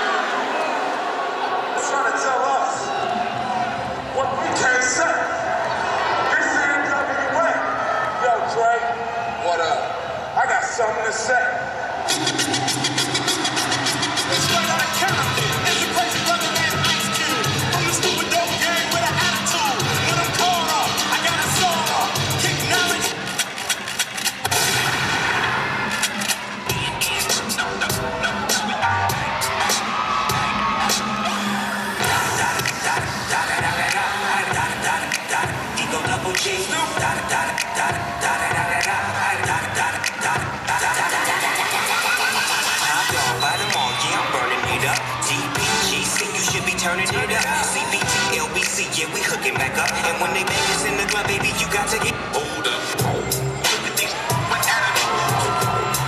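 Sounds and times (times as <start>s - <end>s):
dance music with percussive beat: 11.9s - 56.0s
deep bass: 53.0s - 53.6s.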